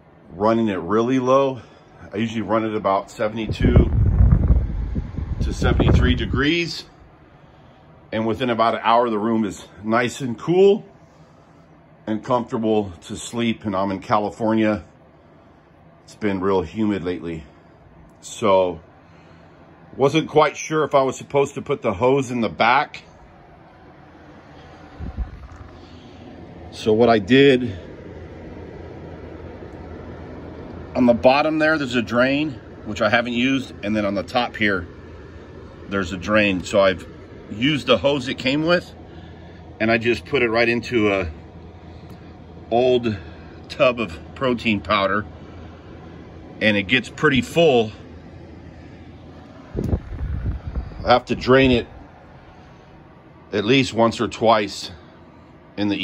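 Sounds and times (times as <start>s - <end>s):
air conditioner fan hum: 0.0s - 56.0s
low rumble on microphone: 2.5s - 9.0s, 24.3s - 26.7s, 47.2s - 53.2s.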